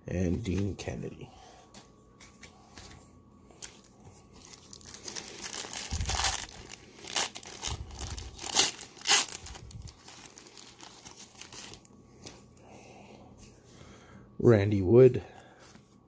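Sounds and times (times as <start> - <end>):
cards rustling: 3.6 - 12.4
wrapper tearing and crinkling: 3.7 - 11.9.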